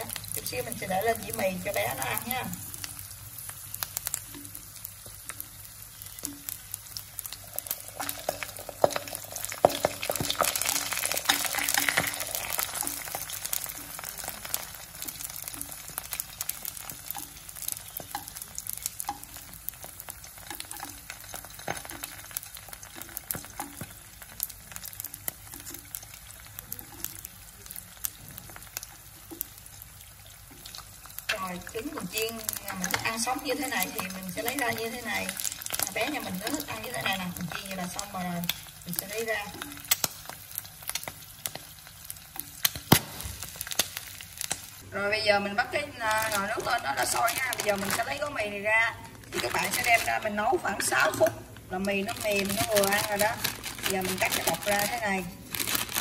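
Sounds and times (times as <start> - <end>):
oil crackling pops: 0.0 - 44.8, 46.0 - 56.0
food sizzling in hot oil: 0.0 - 56.0.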